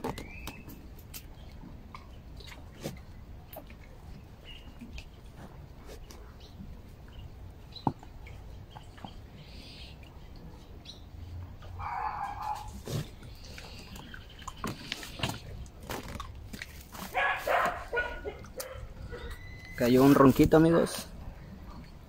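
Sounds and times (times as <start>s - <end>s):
animal calls: 11.6s - 15.4s, 17.0s - 21.1s.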